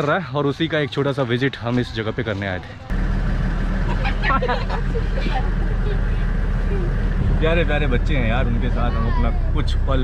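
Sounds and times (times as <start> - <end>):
vehicle engine idling: 2.6 - 10.0.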